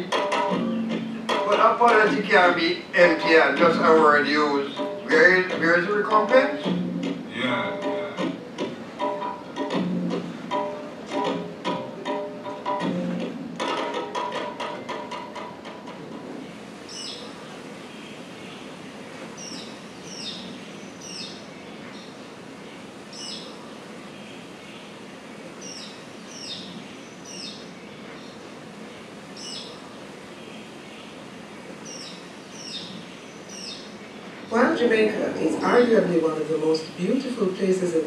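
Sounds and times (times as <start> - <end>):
outdoor hiss: 0.0 - 38.0
bird chirps: 16.9 - 25.0, 25.6 - 34.6.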